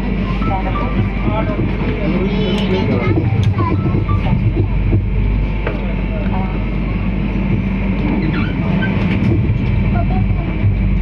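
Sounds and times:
train rumbling slowly: 0.0s - 11.0s.

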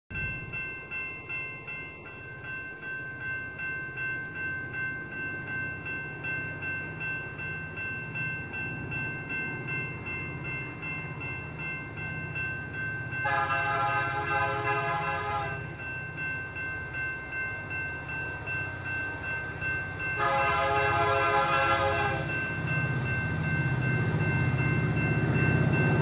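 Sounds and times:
railroad crossing bell ringing: 0.1s - 26.0s.

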